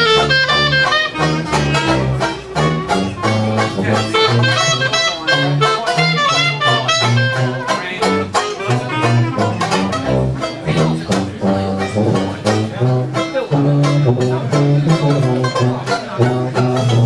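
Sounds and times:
banjo chords: 0.0s - 17.0s
clarinet melody: 0.0s - 17.0s
sousaphone bass line: 0.0s - 17.0s.

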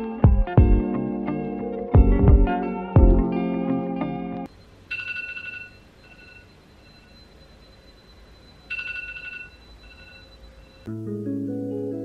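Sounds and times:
phone ringing: 4.4s - 10.9s.

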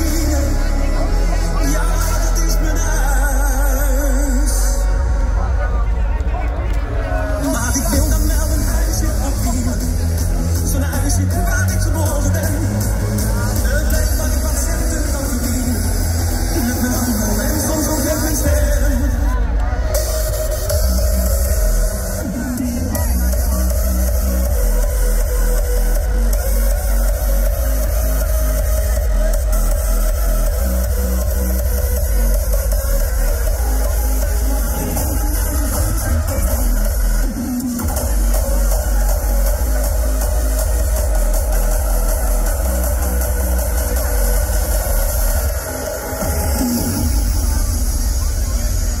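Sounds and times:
electronic dance music: 0.0s - 49.0s
heavy bass kick drum: 7.4s - 45.6s.

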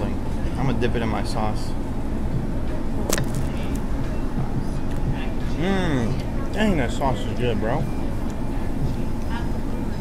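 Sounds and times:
restaurant low rumble: 0.0s - 10.0s.

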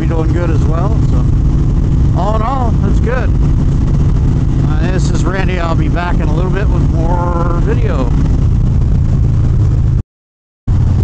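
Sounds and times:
motorcycle engine rumble: 0.0s - 10.0s, 10.7s - 11.0s
wind noise: 0.0s - 10.0s, 10.7s - 11.0s.

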